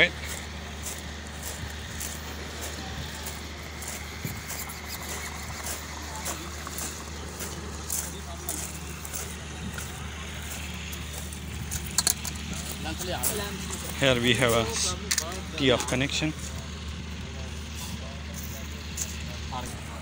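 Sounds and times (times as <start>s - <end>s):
faint workers' voices: 0.0s - 20.0s
small clicks and knocks: 11.7s - 12.5s.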